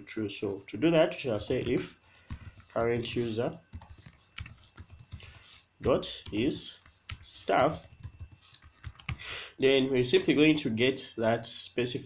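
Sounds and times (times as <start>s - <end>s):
computer keyboard typing: 1.6s - 9.3s.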